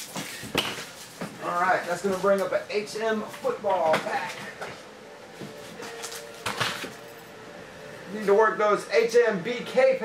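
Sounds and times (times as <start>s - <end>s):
faint steady hum: 0.1s - 10.0s.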